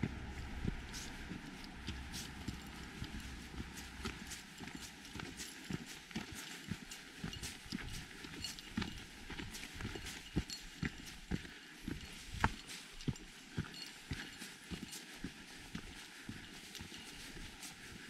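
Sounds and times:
boots crunching on gravel trail: 0:00.0 - 0:18.0.

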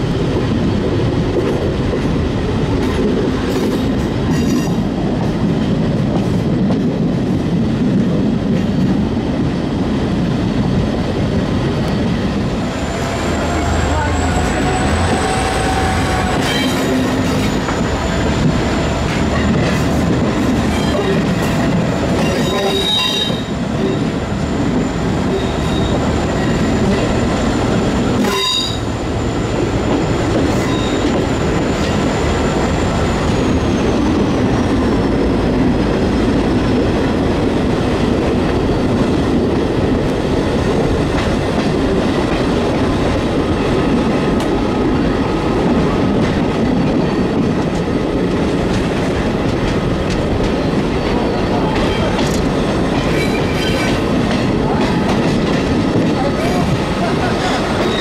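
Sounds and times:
train wheels rumbling on rails: 0:00.0 - 0:58.0
high wheel squeal: 0:22.2 - 0:27.6, 0:28.2 - 0:29.5, 0:30.5 - 0:34.3, 0:53.1 - 0:54.0, 0:57.7 - 0:58.0.

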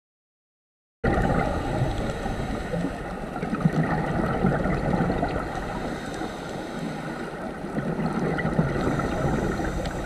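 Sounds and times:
muffled underwater rumble: 0:01.1 - 0:10.0.

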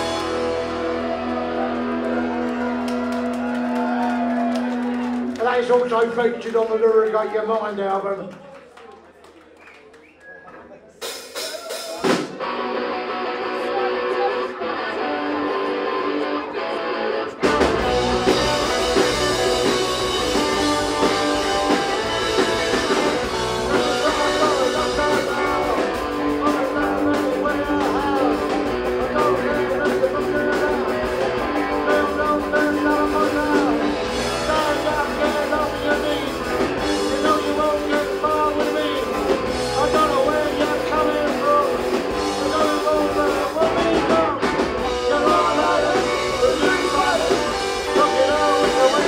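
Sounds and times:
electric guitar playing: 0:00.0 - 0:05.4, 0:12.0 - 0:49.0
punk rock band playing: 0:00.0 - 0:07.5, 0:11.0 - 0:49.0.

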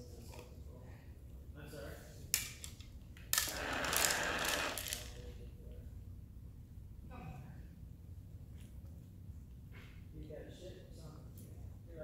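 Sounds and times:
treat dispenser running: 0:03.4 - 0:05.1.

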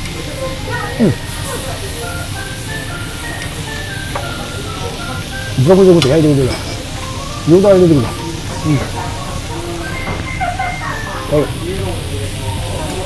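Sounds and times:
light background music: 0:00.0 - 0:13.0
meat sizzling on a grill: 0:00.0 - 0:13.0
man humming mmm: 0:01.0 - 0:01.3.

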